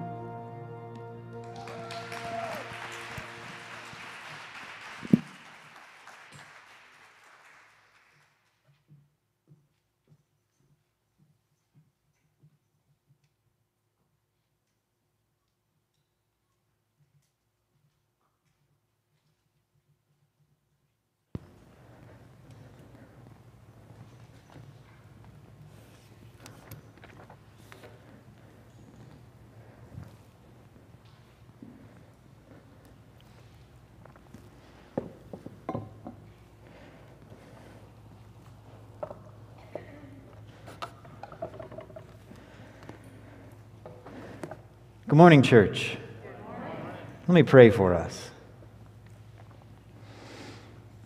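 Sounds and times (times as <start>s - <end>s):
held note of worship song: 0.0s - 5.5s
congregation applauding: 0.0s - 8.6s.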